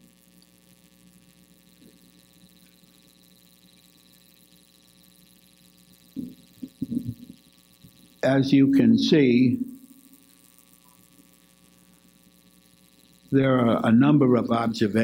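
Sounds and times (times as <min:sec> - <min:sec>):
electrical mains hum: 0:00.0 - 0:15.0
faint high whine: 0:00.0 - 0:15.0.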